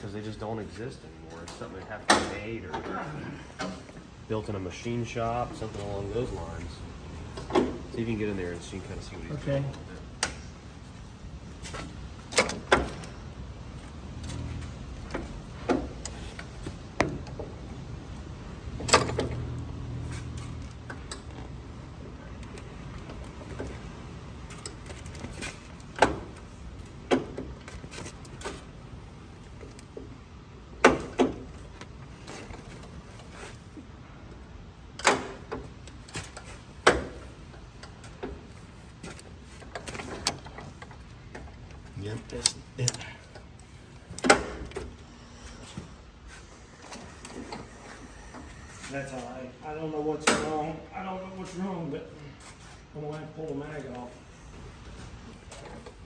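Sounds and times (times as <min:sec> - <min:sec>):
sharp metallic clicks and clunks: 0:01.3 - 0:03.0, 0:11.6 - 0:13.3, 0:18.7 - 0:28.7, 0:34.9 - 0:45.0.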